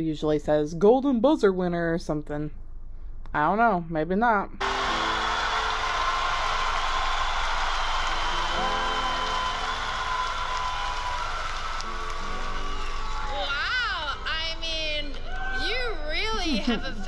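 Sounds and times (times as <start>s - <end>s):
audience applauding and cheering: 4.6s - 17.0s
music: 4.6s - 17.0s
voices: 13.4s - 17.0s.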